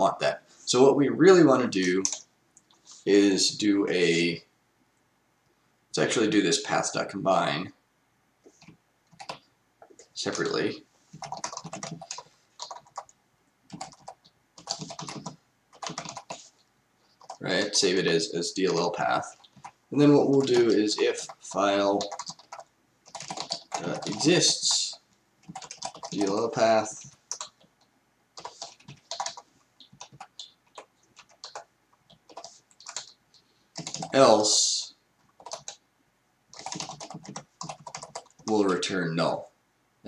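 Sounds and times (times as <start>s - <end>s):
typing on computer keyboard: 2.0s - 2.2s, 8.6s - 9.5s, 11.2s - 16.5s, 17.2s - 17.4s, 18.7s - 24.8s, 25.4s - 27.8s, 28.4s - 33.2s, 33.8s - 34.2s, 35.3s - 35.8s, 36.5s - 38.5s.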